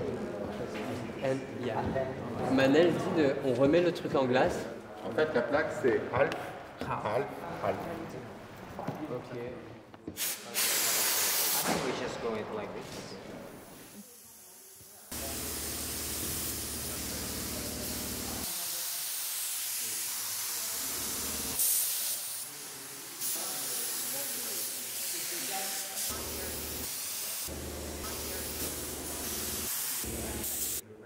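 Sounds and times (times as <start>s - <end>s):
spray gun hissing: 10.2s - 11.8s, 13.7s - 30.8s.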